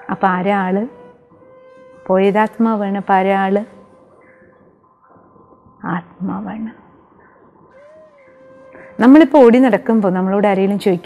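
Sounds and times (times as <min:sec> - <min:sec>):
faint background music: 0:00.0 - 0:11.0
woman speaking: 0:02.1 - 0:03.7, 0:05.8 - 0:06.8, 0:09.0 - 0:11.0.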